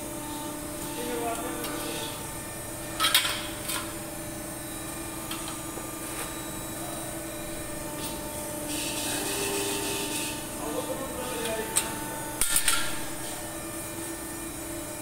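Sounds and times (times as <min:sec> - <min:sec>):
machine hum: 0:00.0 - 0:15.0.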